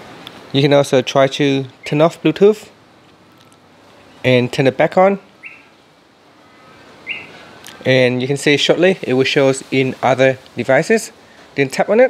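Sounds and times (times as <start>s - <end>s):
faint room hiss: 0.0s - 12.0s
short high bird chirp: 5.4s - 5.8s, 6.5s - 7.8s.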